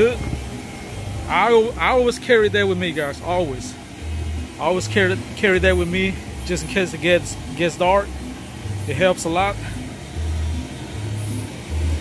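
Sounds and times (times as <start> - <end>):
electric blower rumbling: 0.0 - 12.0.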